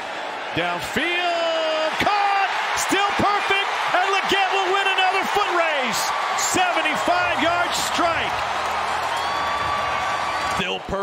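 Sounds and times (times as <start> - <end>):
stadium crowd cheering: 0.0 - 11.0
excited sports commentary shouted: 0.5 - 8.4.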